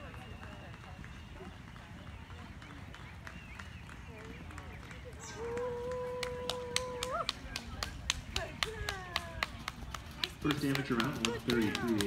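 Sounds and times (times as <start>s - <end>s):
hands clapping: 1.7s - 12.0s.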